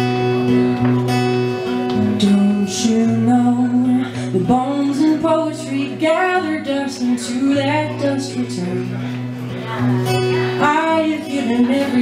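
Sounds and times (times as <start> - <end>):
acoustic guitar: 0.0 - 12.0
woman singing folk song: 1.9 - 12.0.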